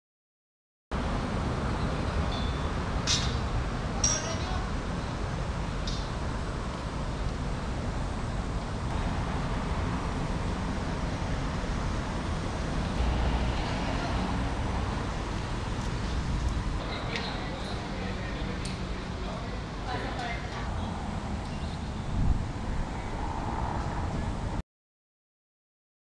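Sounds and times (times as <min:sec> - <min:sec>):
low rumble of traffic: 0:00.9 - 0:24.6.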